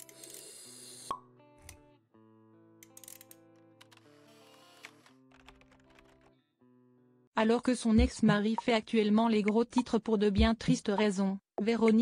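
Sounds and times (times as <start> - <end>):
music: 0.0 - 10.7.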